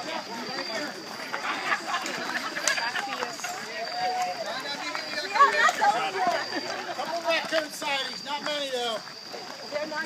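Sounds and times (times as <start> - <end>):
runners talking: 0.0 - 10.0.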